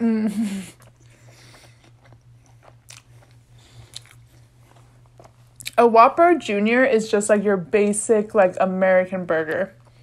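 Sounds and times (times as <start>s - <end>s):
faint low hum: 0.0s - 10.0s
wet chewing mouth sounds: 0.7s - 5.8s.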